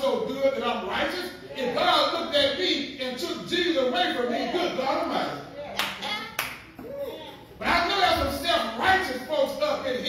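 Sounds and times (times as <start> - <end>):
hand claps: 5.8 - 6.9.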